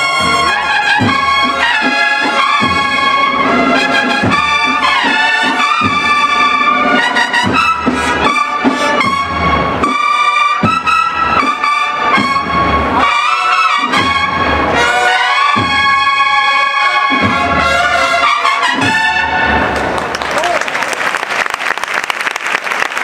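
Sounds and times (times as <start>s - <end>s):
cornets playing march: 0.0s - 19.9s
drum strokes: 0.1s - 20.0s.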